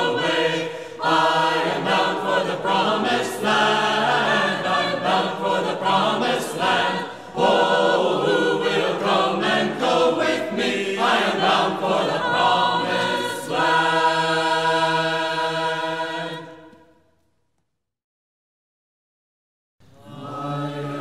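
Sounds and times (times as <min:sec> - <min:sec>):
choir singing: 0:00.0 - 0:17.0, 0:19.8 - 0:21.0.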